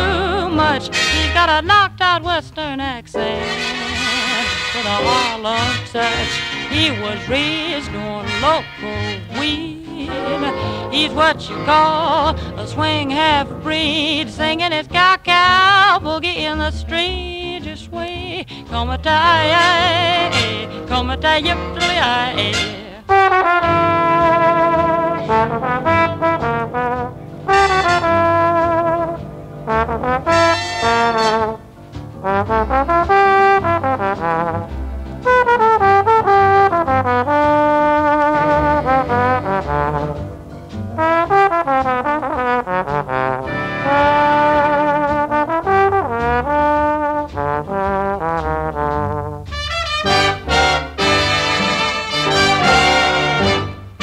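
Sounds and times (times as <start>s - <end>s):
swing big band playing: 0.0s - 54.0s.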